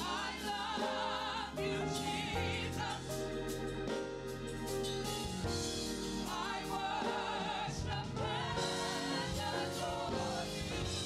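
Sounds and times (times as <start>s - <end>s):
group singing gospel: 0.0s - 4.0s, 5.9s - 11.0s
low instrumental accompaniment: 0.0s - 11.0s.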